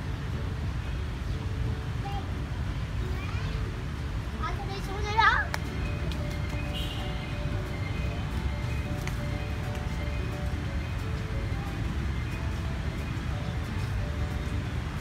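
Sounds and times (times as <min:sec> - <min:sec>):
faint music: 0:00.0 - 0:15.0.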